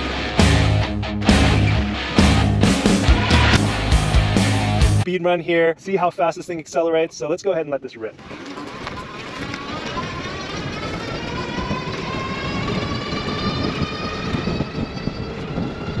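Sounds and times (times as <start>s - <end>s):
electric bike motor whining: 8.2s - 16.0s.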